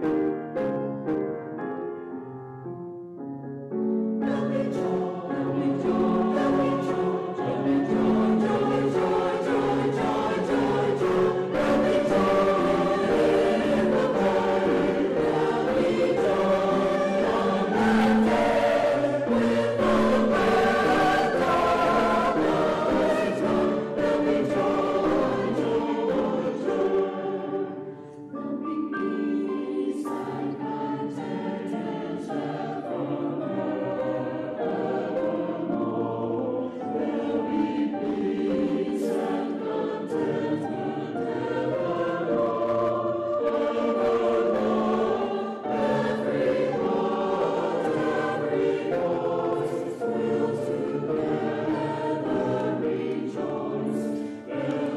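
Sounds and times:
choir singing sacred music: 3.7s - 54.9s.

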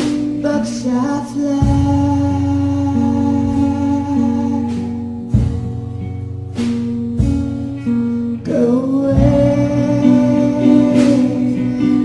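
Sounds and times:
guitar: 0.0s - 12.0s
low accompaniment: 0.0s - 12.0s.

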